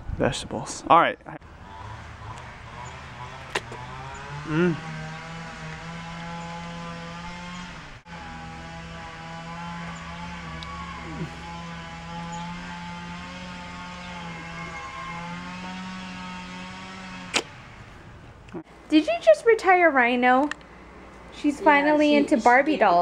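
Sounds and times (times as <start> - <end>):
droning machine hum: 1.4 - 18.9.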